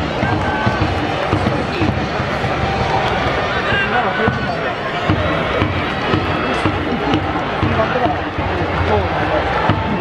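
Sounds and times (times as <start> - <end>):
drum beats: 0.0 - 10.0.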